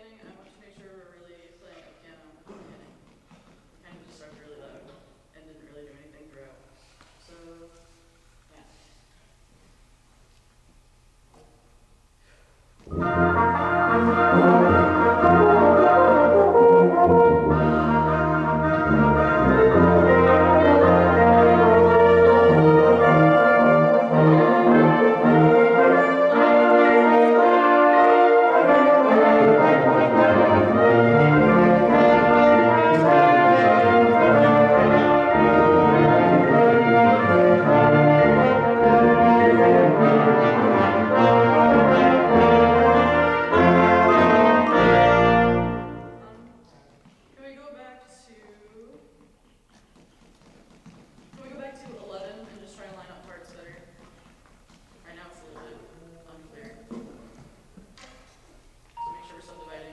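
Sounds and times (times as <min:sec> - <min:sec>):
brass band playing chords: 0:12.6 - 0:46.6.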